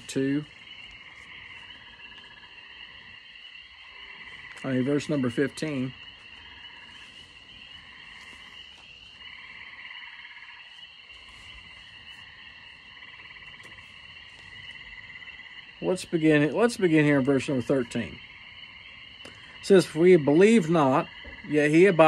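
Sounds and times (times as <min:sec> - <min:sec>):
chorus of animals trilling: 0:00.0 - 0:22.0.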